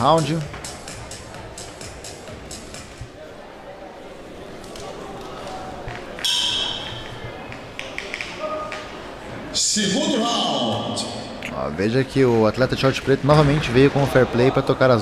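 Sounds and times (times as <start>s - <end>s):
music in a hall: 0.0s - 3.1s
murmur of voices: 0.0s - 15.0s.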